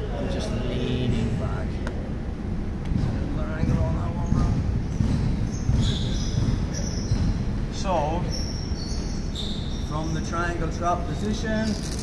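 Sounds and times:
indistinct voices in a hall: 0.0 - 12.0
low irregular thuds: 1.2 - 8.2.

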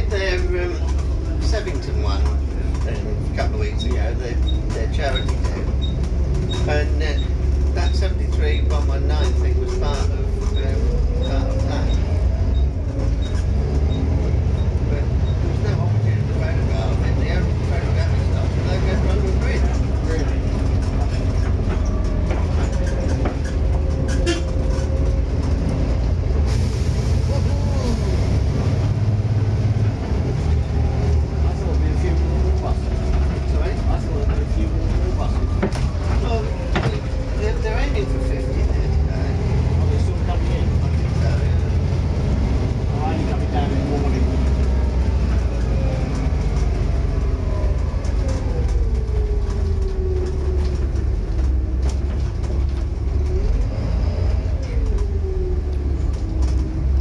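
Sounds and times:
diesel bus engine droning: 0.0 - 57.0.

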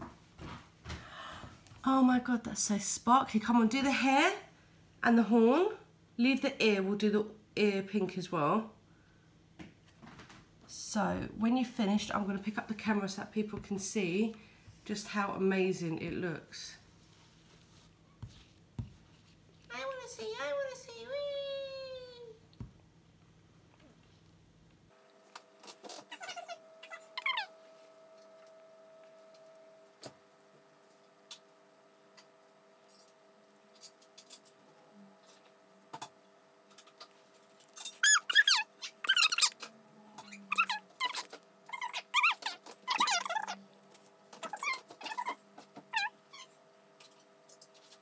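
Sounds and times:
baby squealing: 26.1 - 27.5, 37.8 - 43.6, 44.4 - 46.6.

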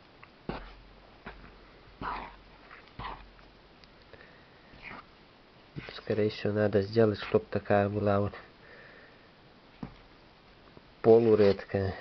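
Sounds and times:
spoon stirring sticky dough: 4.7 - 8.4.

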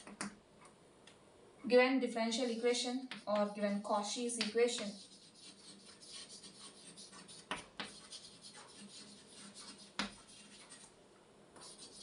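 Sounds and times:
chalk scratching on blackboard: 2.5 - 3.6, 4.4 - 10.9, 11.6 - 12.0
chalk tapping on blackboard: 3.0 - 3.6, 4.4 - 10.9, 11.6 - 12.0.

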